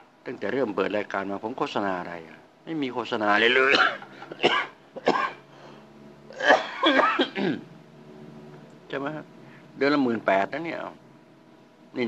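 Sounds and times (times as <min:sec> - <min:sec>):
man clearing his throat: 0:03.5 - 0:05.4, 0:06.3 - 0:07.6.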